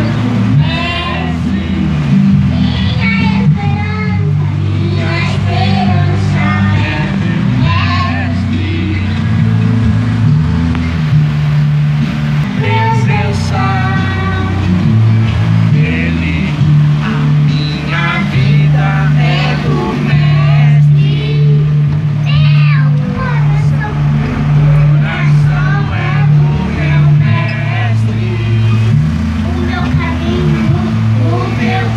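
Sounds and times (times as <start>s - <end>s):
backing track with heavy bass: 0.0s - 31.9s
low accompaniment drone: 0.0s - 31.9s
girl singing into microphone: 2.4s - 8.4s, 12.6s - 14.8s, 17.9s - 28.0s, 29.4s - 31.9s.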